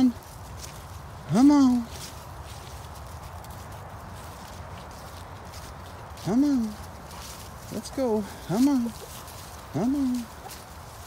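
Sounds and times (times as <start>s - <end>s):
footsteps on grass and leaves: 0.0s - 11.0s
steady low rumble: 0.0s - 11.0s.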